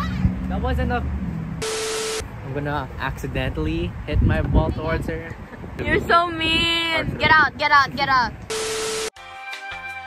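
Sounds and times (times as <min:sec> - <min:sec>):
steady tone: 0:01.6 - 0:02.2.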